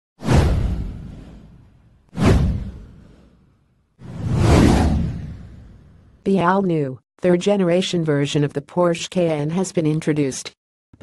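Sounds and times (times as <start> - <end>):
whoosh sound effects: 0.2 - 6.0.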